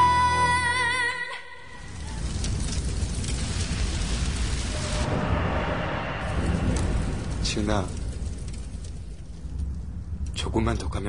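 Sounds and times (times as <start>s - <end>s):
fire crackling and hissing: 1.6s - 11.0s.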